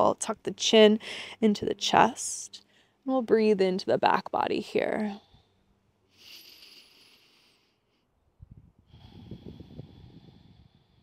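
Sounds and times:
person breathing deeply: 0:05.2 - 0:08.1, 0:08.8 - 0:11.0.

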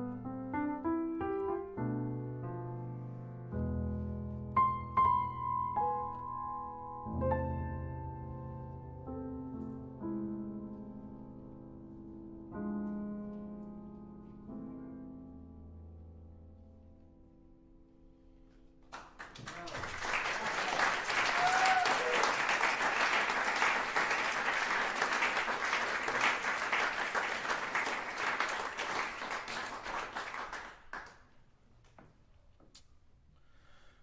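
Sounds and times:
audience applauding: 0:18.9 - 0:31.3.

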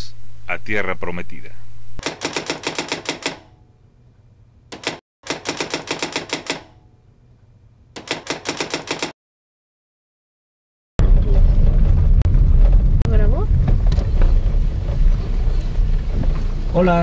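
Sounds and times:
rapid keystroke clicks: 0:02.0 - 0:03.4, 0:04.8 - 0:06.6, 0:08.0 - 0:09.2.

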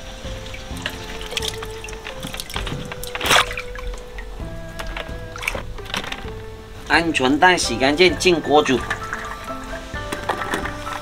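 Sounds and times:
background music with held notes: 0:00.0 - 0:11.0
water splashing and trickling: 0:00.0 - 0:11.0.

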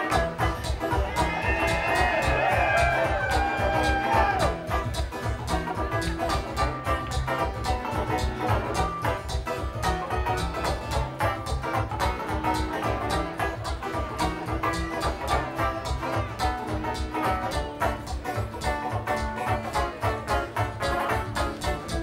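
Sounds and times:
fast banjo picking: 0:00.0 - 0:22.0
strummed acoustic guitar: 0:00.0 - 0:22.0.

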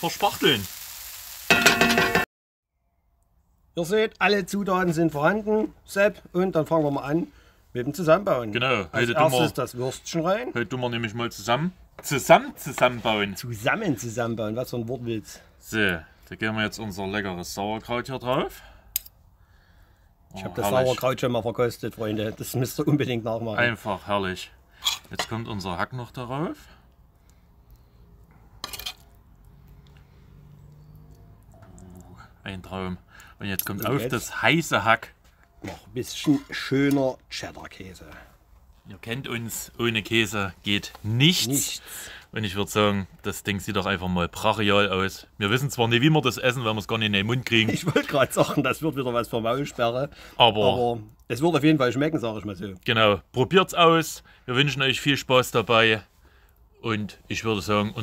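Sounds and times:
meat sizzling in a pan: 0:00.0 - 0:02.2
metallic ringing clang: 0:01.5 - 0:02.2.

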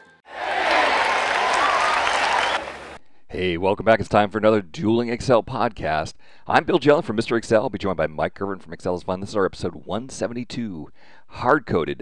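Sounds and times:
audience applause: 0:00.3 - 0:03.0.

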